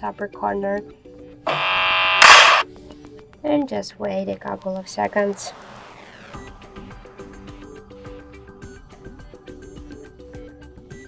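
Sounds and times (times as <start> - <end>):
burst of noise: 1.5 - 2.6
loud buzzy tone: 1.5 - 2.6.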